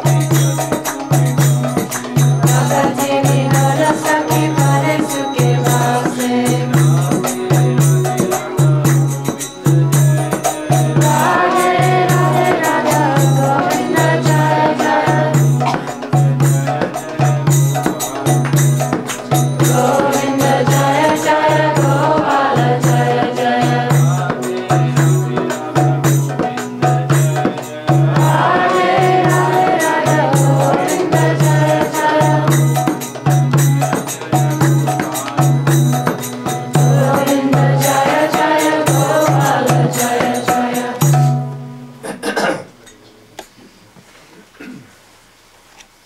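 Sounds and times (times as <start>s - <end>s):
voices chanting a devotional song: 0.0s - 41.6s
steady percussive beat: 0.0s - 41.7s.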